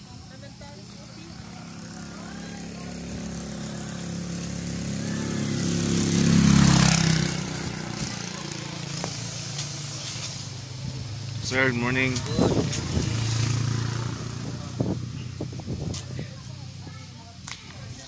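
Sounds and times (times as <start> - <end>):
vehicle engine driving past: 0.5 - 17.3.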